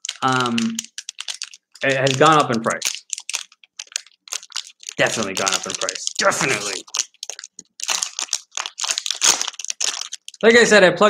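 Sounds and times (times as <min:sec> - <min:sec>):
plastic wrapper crinkling: 0:00.0 - 0:10.6.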